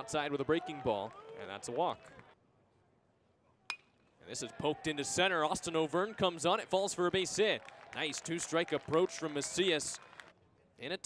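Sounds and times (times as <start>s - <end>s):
metal bat hitting ball: 3.7s - 3.9s.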